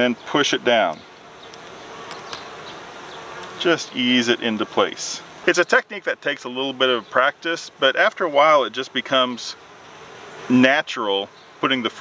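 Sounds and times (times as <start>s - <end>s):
bees buzzing: 0.0s - 12.0s
faint clicks: 0.9s - 2.5s.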